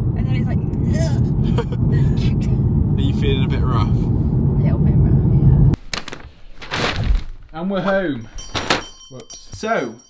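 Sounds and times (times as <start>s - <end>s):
car cabin road and engine rumble: 0.0s - 5.8s
short rustling: 5.8s - 9.1s.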